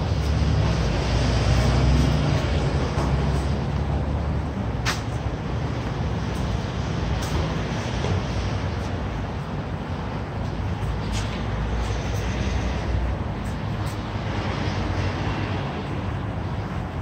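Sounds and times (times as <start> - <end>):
city traffic rumble: 0.0 - 17.0.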